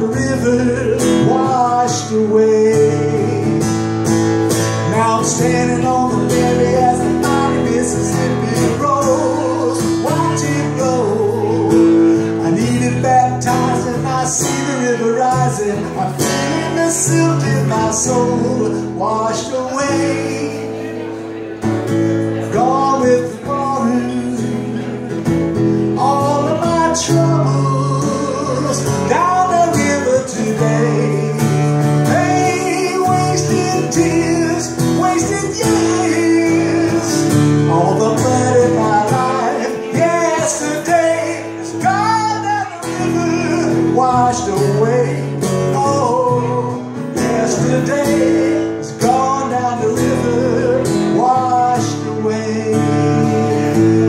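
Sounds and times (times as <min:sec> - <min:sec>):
acoustic guitar strumming: 0:00.0 - 0:54.0
man singing: 0:00.0 - 0:54.0.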